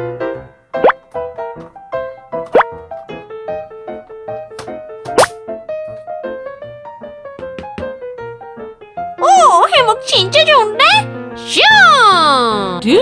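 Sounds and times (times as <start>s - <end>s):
cheerful children's music: 8.5s - 13.0s.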